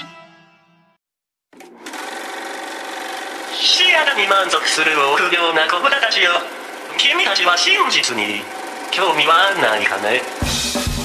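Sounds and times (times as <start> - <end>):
machine-like electronic whirring: 2.2 - 10.4.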